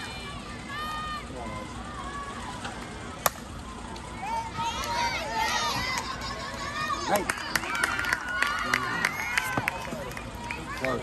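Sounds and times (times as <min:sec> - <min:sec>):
spectators shouting and cheering: 0:00.0 - 0:11.0
bat striking ball: 0:03.2 - 0:03.4.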